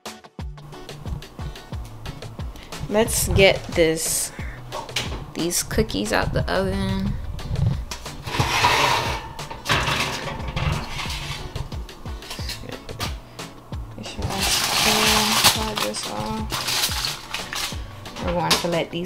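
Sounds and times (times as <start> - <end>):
background music: 0.0 - 19.0
metal baking tray clanking: 7.9 - 13.2
aluminium foil crinkling: 14.0 - 18.7.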